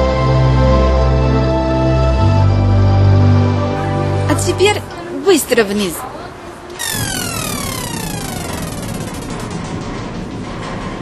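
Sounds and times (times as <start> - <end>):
continuous rumble: 6.1 - 11.0
falling whistle tone: 6.8 - 9.5.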